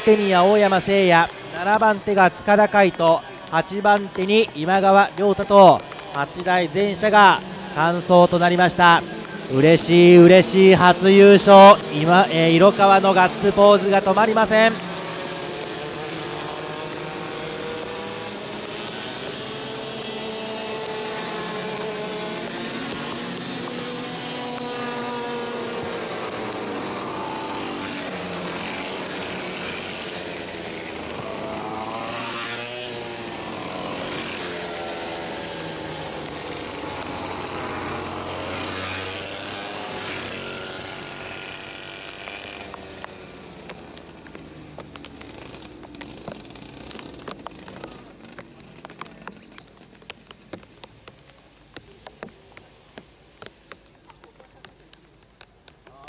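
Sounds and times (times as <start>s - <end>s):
kart engines passing by: 0.0s - 56.0s.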